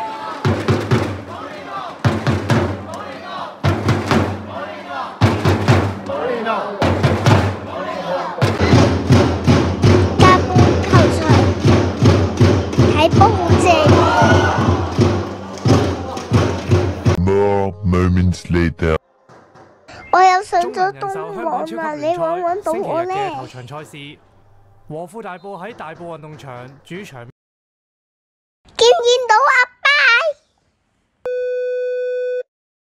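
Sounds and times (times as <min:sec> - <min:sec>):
crowd cheering: 0:00.0 - 0:17.6
thunder sticks thumping: 0:08.4 - 0:17.2.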